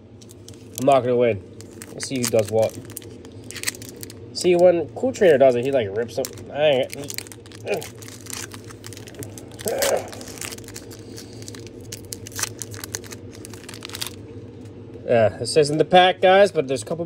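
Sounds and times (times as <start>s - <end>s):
low steady hum: 0.0s - 17.0s
foil wrapper tearing and crinkling: 0.2s - 14.3s.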